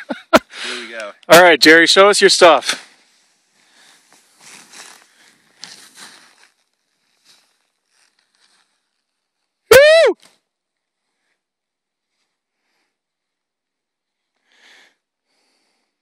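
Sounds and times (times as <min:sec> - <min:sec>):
skis swishing through snow: 0:02.4 - 0:09.6
person whooping: 0:09.7 - 0:10.2.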